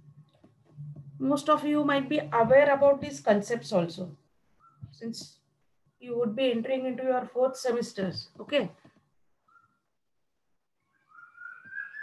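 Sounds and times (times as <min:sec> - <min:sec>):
high rising whistling tone: 0:10.8 - 0:12.0.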